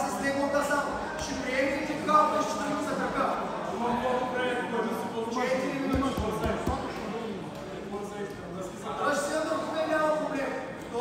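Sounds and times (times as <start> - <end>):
voices in a hall: 0.0 - 11.0.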